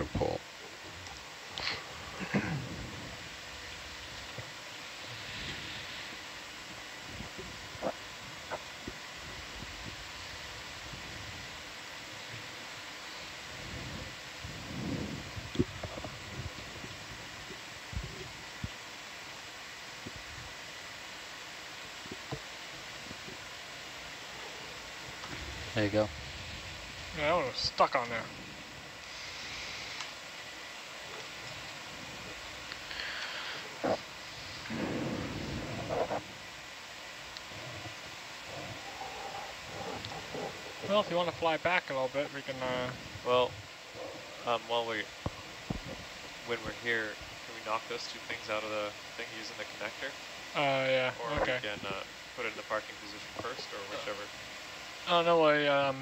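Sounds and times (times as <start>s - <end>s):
steady audio hiss: 0.0s - 56.0s.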